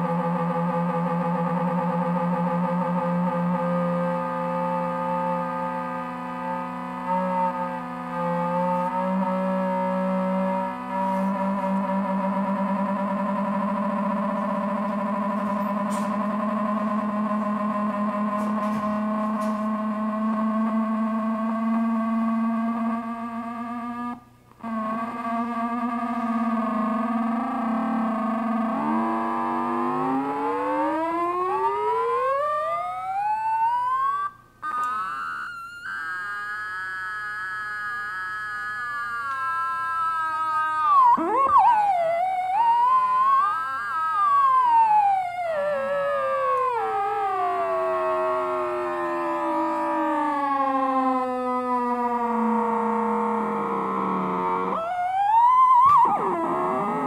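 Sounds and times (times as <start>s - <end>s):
synthesizer square-wave drone: 0.0s - 57.0s.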